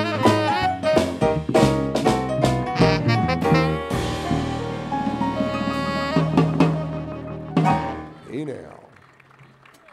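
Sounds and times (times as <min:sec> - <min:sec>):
rhythm and blues band: 0:00.0 - 0:09.9
drum strikes: 0:00.2 - 0:08.1.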